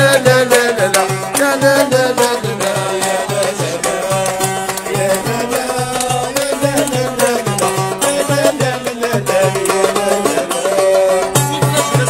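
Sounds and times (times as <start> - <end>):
hand drum beat: 0.0 - 12.0
person singing: 0.0 - 12.0
plucked mandole: 0.0 - 12.0.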